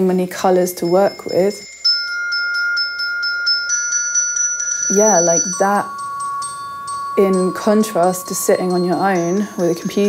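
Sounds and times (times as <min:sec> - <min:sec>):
glockenspiel notes: 0:00.0 - 0:10.0.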